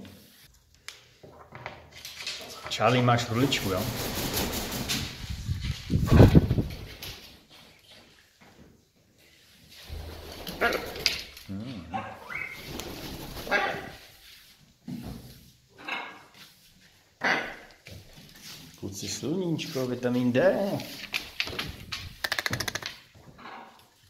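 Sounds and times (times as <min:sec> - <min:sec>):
parrots calling and muttering: 0:11.9 - 0:12.7.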